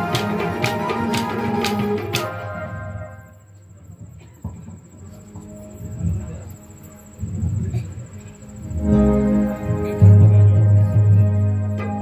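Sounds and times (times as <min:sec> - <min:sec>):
folk dance music: 0:00.0 - 0:03.3, 0:08.7 - 0:12.0
high-pitched cricket trill: 0:02.8 - 0:12.0.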